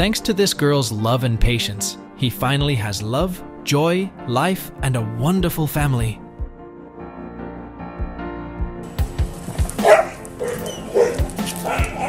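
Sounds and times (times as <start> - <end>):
background music with beat: 6.0 - 12.0
dog barking: 9.7 - 12.0.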